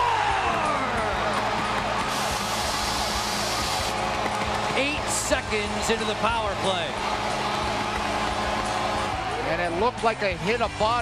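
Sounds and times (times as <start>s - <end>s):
crowd cheering: 0.0s - 11.0s.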